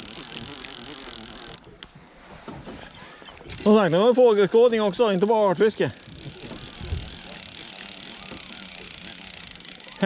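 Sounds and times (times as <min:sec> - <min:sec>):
fishing reel whirring: 0:00.0 - 0:01.7, 0:03.5 - 0:10.0.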